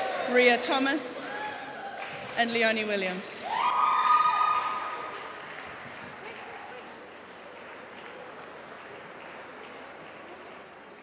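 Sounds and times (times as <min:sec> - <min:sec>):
applause: 0:00.0 - 0:11.0
high whoop from audience: 0:03.4 - 0:05.2.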